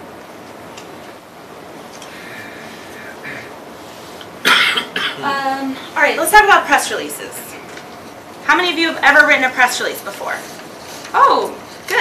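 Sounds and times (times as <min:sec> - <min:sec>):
throat clearing: 0:03.2 - 0:03.5, 0:04.5 - 0:05.2
person coughing: 0:04.4 - 0:05.4.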